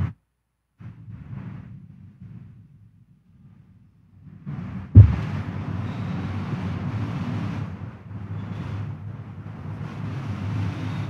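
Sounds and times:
faint low room rumble: 0:00.0 - 0:11.0
sharp loud thump: 0:05.0 - 0:05.4.

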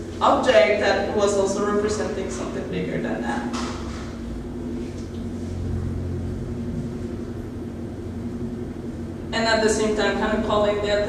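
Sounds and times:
low rumble: 0:00.0 - 0:11.0
steady background hum: 0:00.0 - 0:11.0.

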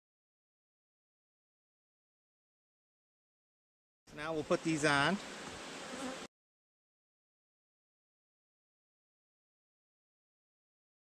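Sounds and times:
honeybees buzzing: 0:04.5 - 0:06.3.

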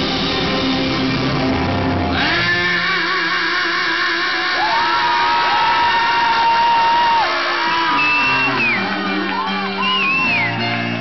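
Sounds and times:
bending lead guitar notes: 0:00.0 - 0:11.0
live rock band playing: 0:00.0 - 0:11.0.

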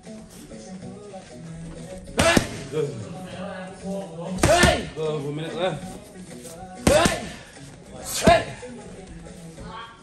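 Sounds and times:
faint background music: 0:00.0 - 0:10.0
gloved punches on pads: 0:02.2 - 0:02.7, 0:04.4 - 0:04.9, 0:06.8 - 0:07.4.

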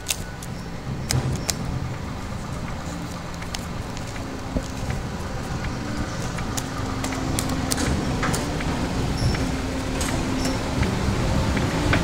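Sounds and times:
sharp clicks: 0:00.0 - 0:10.6
low mechanical hum: 0:00.0 - 0:12.0.

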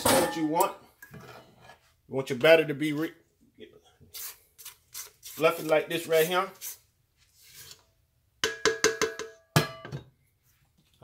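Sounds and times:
spatula knocking metal bowl: 0:08.4 - 0:10.0.

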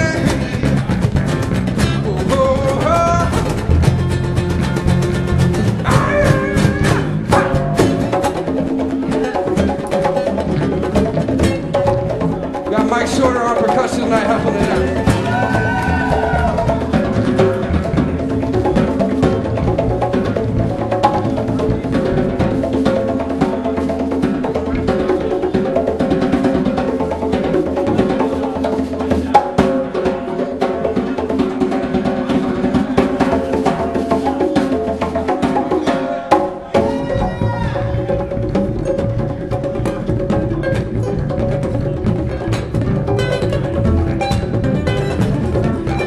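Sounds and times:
acoustic band playing: 0:00.0 - 0:46.0
conga drums: 0:00.0 - 0:46.0.

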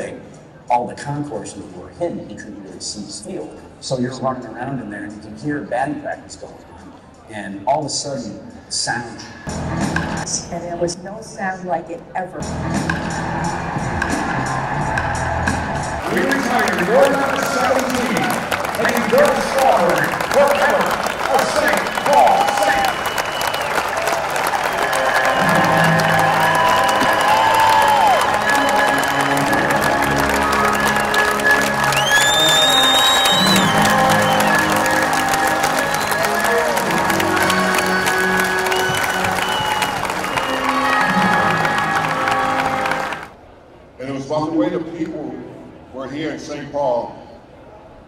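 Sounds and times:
crowd applauding and cheering: 0:12.9 - 0:43.4
loud whistle: 0:16.0 - 0:43.3
music with long held notes: 0:24.9 - 0:43.3.

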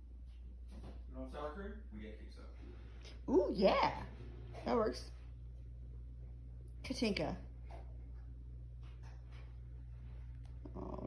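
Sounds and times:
low room hum: 0:00.0 - 0:11.0
woman speaking: 0:03.1 - 0:05.3, 0:06.8 - 0:07.5, 0:10.6 - 0:11.0.

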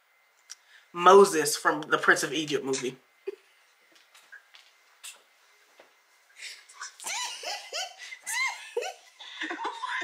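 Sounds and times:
woman laughing: 0:06.8 - 0:10.0.

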